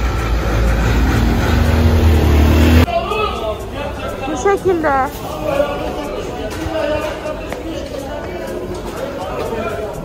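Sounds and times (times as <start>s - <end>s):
low engine drone: 0.0s - 2.9s
motor scooters passing: 0.0s - 2.9s
street traffic: 0.0s - 10.0s
voices and chatter: 2.8s - 10.0s.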